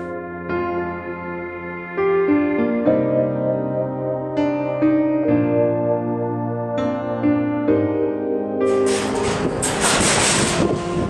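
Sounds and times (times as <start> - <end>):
train wheels rumbling: 8.7 - 11.0.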